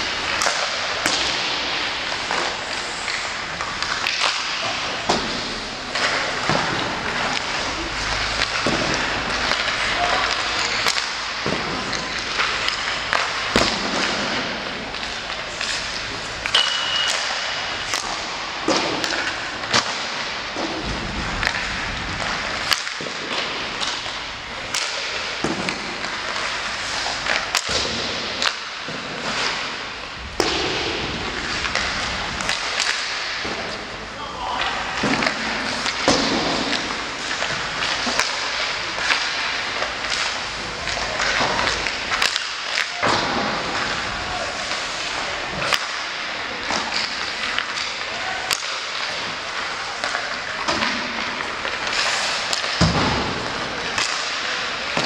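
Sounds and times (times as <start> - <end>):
pucks hitting boards and glass: 0.0 - 55.0
skates scraping on ice: 0.0 - 55.0
sticks hitting pucks: 0.0 - 55.0.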